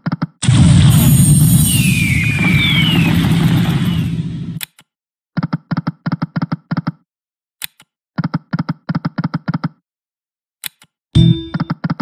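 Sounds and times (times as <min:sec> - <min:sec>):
falling whistles: 0:00.9 - 0:04.6.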